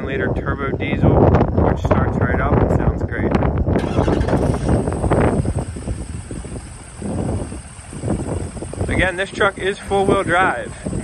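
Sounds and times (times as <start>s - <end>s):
diesel engine idling unevenly: 3.8s - 11.0s.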